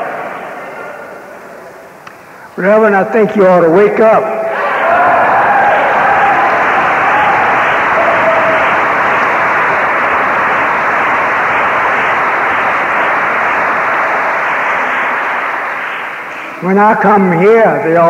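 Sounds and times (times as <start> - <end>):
crowd applause: 4.6 - 16.7.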